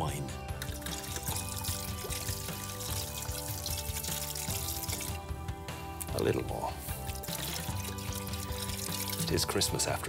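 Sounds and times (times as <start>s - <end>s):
background music: 0.0s - 10.0s
wine pouring into liquid: 0.6s - 5.3s, 6.8s - 9.5s.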